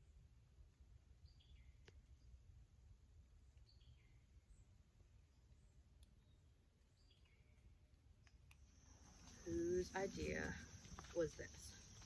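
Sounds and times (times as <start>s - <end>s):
faint bird chirps: 1.2s - 2.6s, 3.3s - 7.9s
high insect drone: 8.7s - 12.0s.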